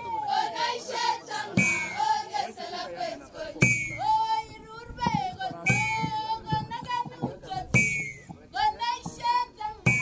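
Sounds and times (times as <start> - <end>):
girls' choir singing: 0.0 - 4.5
drum beats: 1.6 - 2.2, 3.6 - 10.0.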